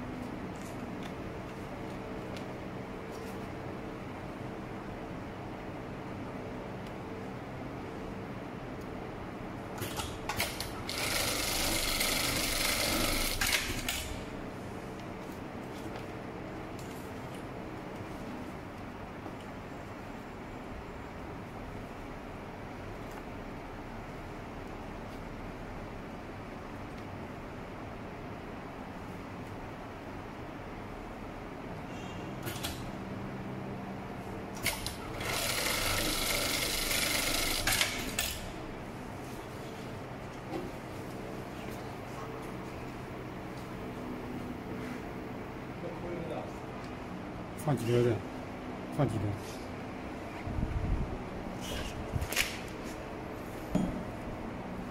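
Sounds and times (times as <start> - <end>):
sewing machine running: 10.4 - 14.0, 34.8 - 38.2.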